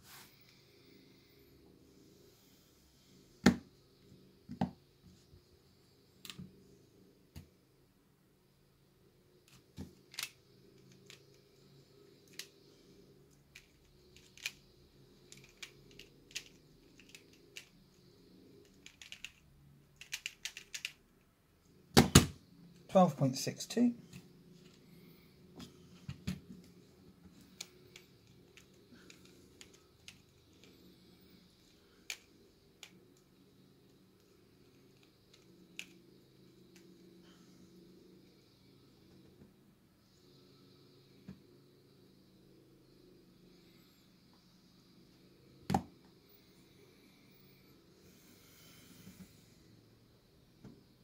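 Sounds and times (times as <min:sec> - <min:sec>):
low steady hum: 0:00.0 - 0:51.0
plastic puzzle clicks: 0:10.1 - 0:11.3, 0:13.6 - 0:14.6, 0:15.3 - 0:17.7, 0:18.6 - 0:19.4, 0:20.0 - 0:21.0, 0:35.0 - 0:36.0.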